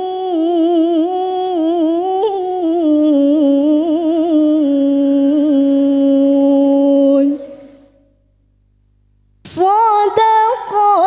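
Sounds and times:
woman reciting melodically: 0.0s - 8.0s, 9.4s - 11.0s.

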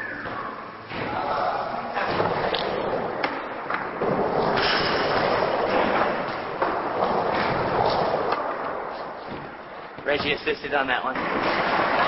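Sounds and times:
skateboard wheels rolling on wood: 2.1s - 12.0s.

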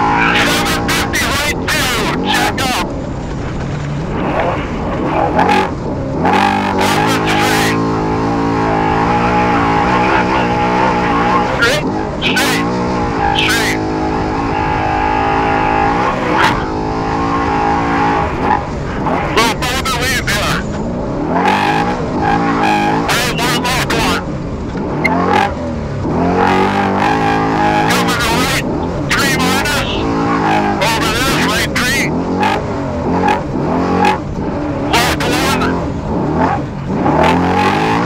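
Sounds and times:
racing truck engine running hard: 0.0s - 38.0s.

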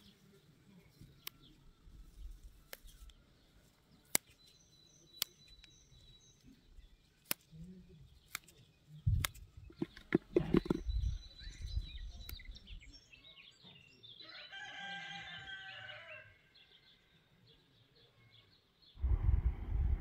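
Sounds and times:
small birds chirping: 0.0s - 19.2s
rooster crowing: 14.2s - 16.4s
loud low rumble: 19.0s - 20.0s.

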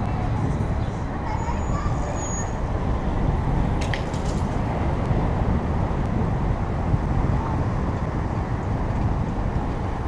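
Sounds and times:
road traffic passing: 0.0s - 10.0s
wind rumble on microphone: 0.0s - 10.0s.

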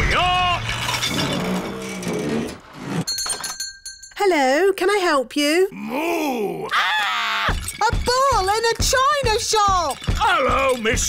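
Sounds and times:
shop doorbell ringing: 3.0s - 4.2s.

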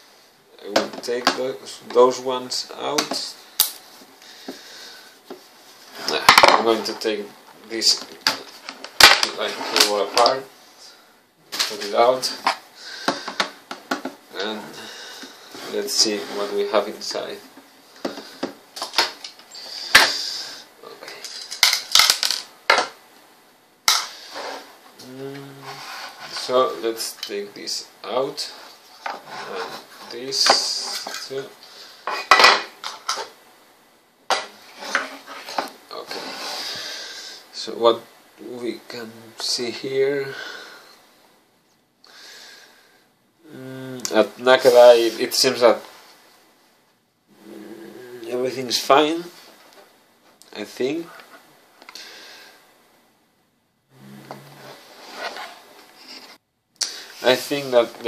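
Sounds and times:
man speaking: 0.5s - 3.4s, 6.0s - 8.2s, 9.2s - 10.9s, 11.6s - 12.5s, 14.3s - 15.0s, 15.6s - 17.5s, 25.0s - 28.6s, 29.4s - 31.6s, 43.4s - 45.9s, 47.4s - 49.4s, 50.5s - 51.2s, 57.2s - 58.0s.

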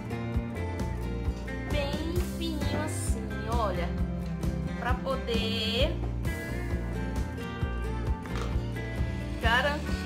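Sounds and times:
music with held notes: 0.0s - 10.0s.

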